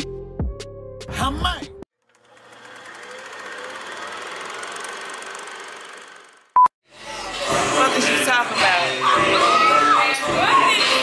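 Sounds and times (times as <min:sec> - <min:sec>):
film projector clatter: 0:02.0 - 0:06.5.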